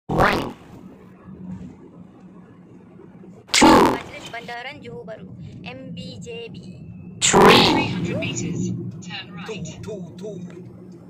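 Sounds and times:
faint low steady hum: 0.1s - 11.0s.

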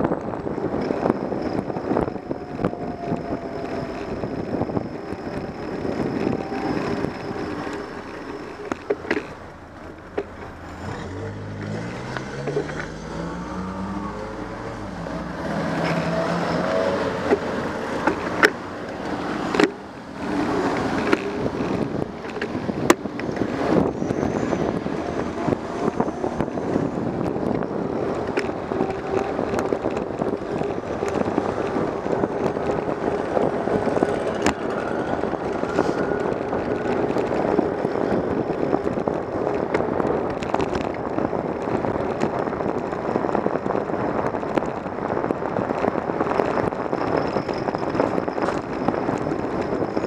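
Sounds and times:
wind and road noise: 0.0s - 50.0s
car engine speeding up: 0.6s - 41.8s.

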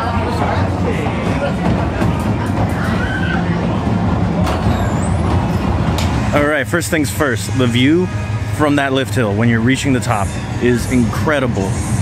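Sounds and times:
chatter of riders: 0.0s - 4.4s
roller coaster train pulling out: 0.0s - 12.0s
steady low rumble: 0.0s - 12.0s.

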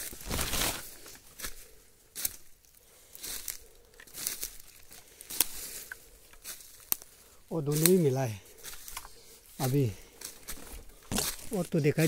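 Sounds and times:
footsteps crunching through dry leaves: 0.0s - 12.0s.

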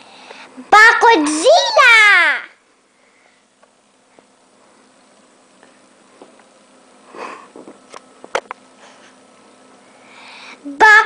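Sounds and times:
breathy sniff: 7.0s - 7.8s.

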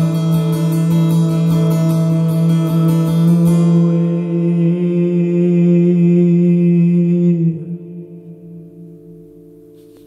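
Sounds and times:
acoustic guitar: 0.0s - 10.0s
man singing long note: 2.3s - 8.7s.

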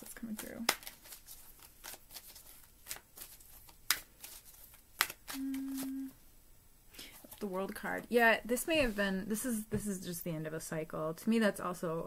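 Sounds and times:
cards being shuffled: 0.0s - 6.1s
card snaps: 3.8s - 4.1s, 5.0s - 6.0s
woman humming: 5.3s - 6.2s.

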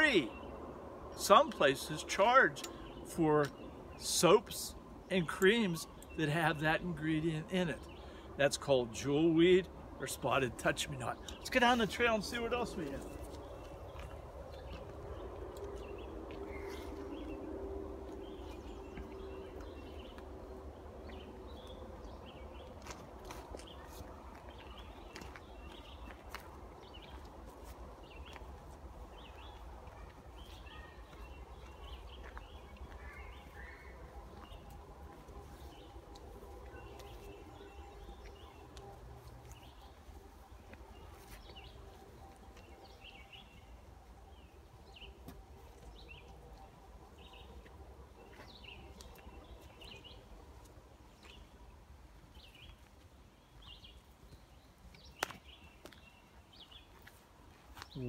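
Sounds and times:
birds chirping: 0.0s - 58.0s
footsteps through brush: 10.8s - 58.0s.

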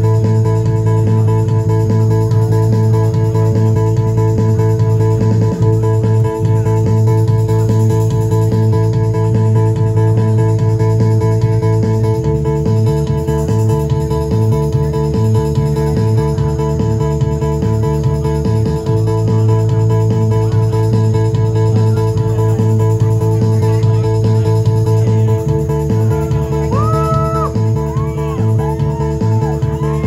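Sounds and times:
electric bass guitar: 0.0s - 30.0s.

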